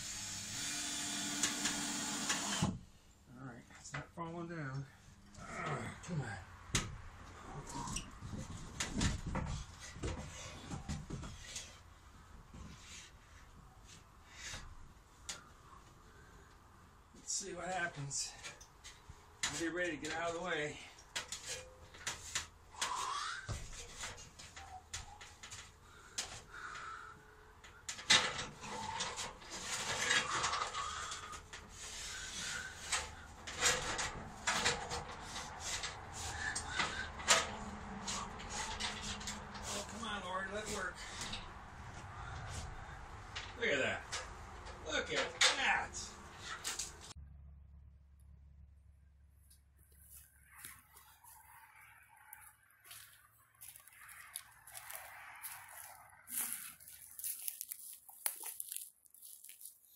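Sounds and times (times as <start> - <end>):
metal ladder scraping and knocking: 7.7 - 11.9, 17.7 - 20.5, 21.1 - 23.0, 23.6 - 26.4, 27.6 - 41.5, 42.5 - 47.2.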